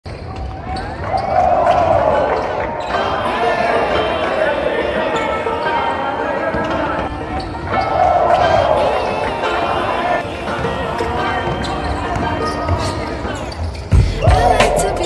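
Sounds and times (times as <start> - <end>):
music with vocals: 2.8 - 15.0.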